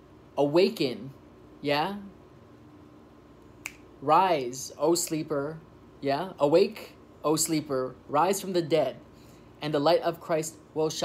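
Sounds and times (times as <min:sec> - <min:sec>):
finger snap: 0:03.6 - 0:03.9.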